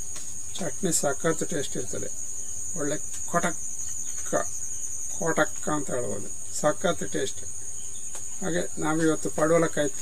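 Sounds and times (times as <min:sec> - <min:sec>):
high-pitched insect drone: 0:00.0 - 0:10.0
man speaking: 0:00.6 - 0:02.2, 0:02.8 - 0:03.6, 0:05.1 - 0:07.5, 0:08.4 - 0:10.0.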